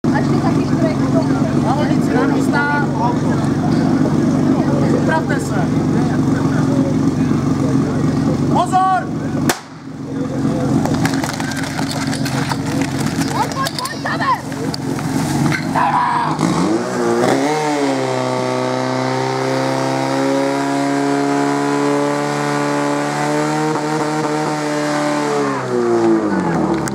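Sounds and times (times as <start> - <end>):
fire pump engine revving: 0.0 - 26.9
spectators shouting: 15.5 - 16.5.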